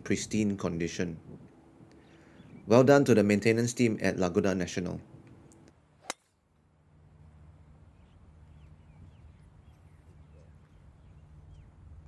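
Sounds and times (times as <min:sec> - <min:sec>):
faint outdoor background: 0:00.0 - 0:12.0
golf club striking ball: 0:05.2 - 0:06.4.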